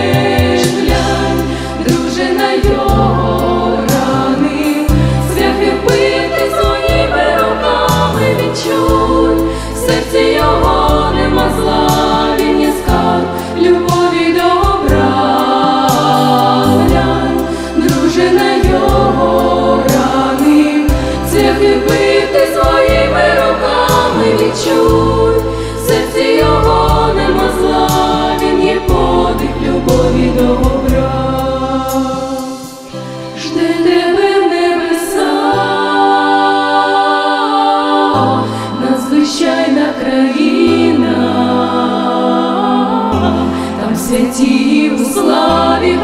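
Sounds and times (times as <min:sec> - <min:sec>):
steady bass line: 0:00.0 - 0:32.4
women singing in harmony: 0:00.0 - 0:46.0.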